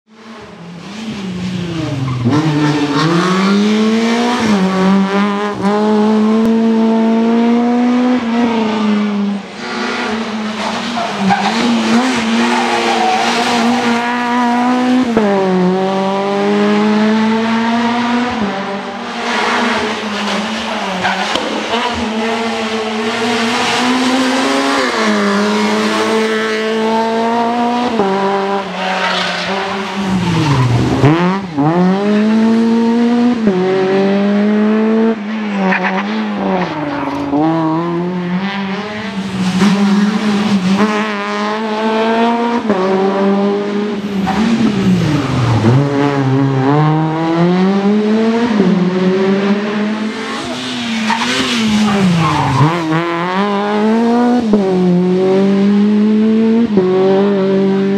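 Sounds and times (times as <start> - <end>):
rally car engine at full throttle: 0.1 - 57.9.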